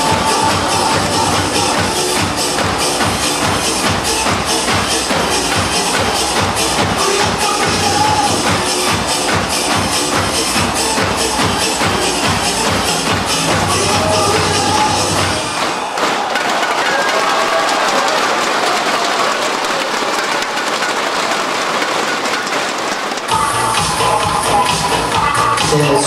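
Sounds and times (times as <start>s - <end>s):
dance music with steady beat: 0.0s - 16.1s, 23.3s - 26.0s
audience applause and cheering: 0.0s - 25.6s
inflatable cheering sticks beaten: 0.0s - 25.7s.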